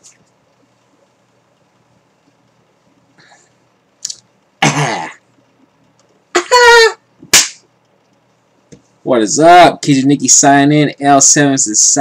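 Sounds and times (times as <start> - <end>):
sharp smack: 7.3 - 7.6.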